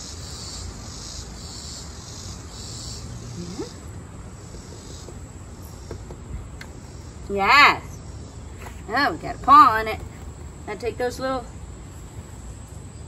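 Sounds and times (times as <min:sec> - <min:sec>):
insects chirping: 0:00.0 - 0:13.0.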